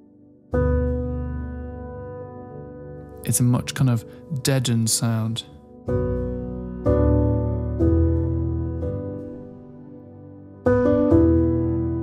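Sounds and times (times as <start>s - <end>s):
low piano chord: 0.0s - 12.0s.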